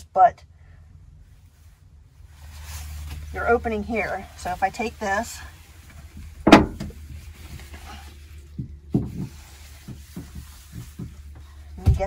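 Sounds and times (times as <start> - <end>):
blanket rustling: 1.3 - 11.8.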